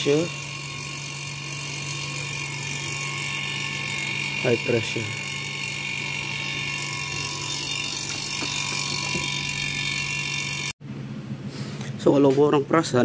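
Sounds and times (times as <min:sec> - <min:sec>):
vacuum pump humming and whining: 0:00.0 - 0:12.1.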